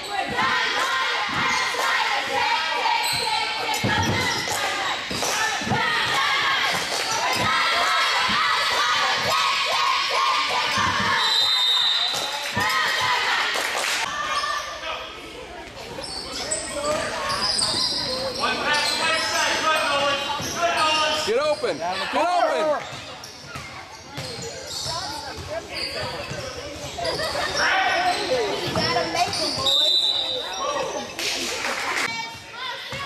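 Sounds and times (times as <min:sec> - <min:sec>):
people shouting in echoing hall: 0:00.0 - 0:11.3
referee's whistle: 0:11.0 - 0:12.3, 0:29.3 - 0:30.9.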